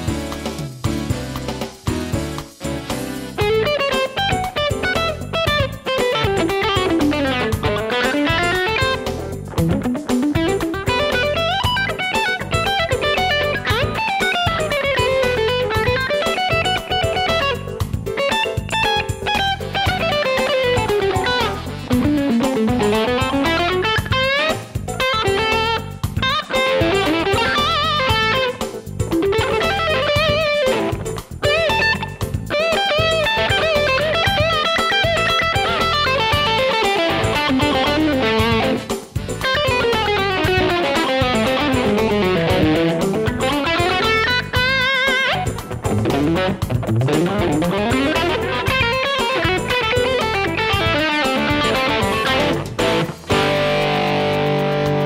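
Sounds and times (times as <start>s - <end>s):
electric guitar solo: 3.4s - 55.0s.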